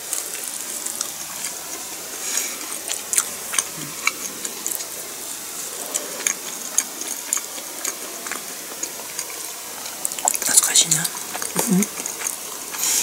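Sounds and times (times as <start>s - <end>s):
person chewing food: 0.0s - 13.0s
wet mouth clicks and smacks: 0.1s - 5.0s, 5.7s - 13.0s.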